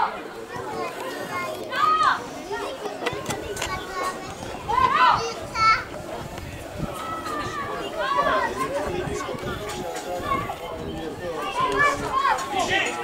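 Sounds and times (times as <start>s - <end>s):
children shouting: 0.0s - 5.9s, 6.8s - 13.0s
outdoor murmur: 0.0s - 13.0s.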